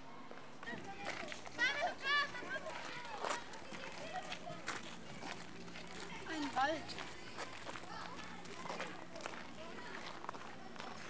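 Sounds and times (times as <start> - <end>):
faint voices: 0.0 - 11.0
footsteps on gravel: 2.3 - 11.0.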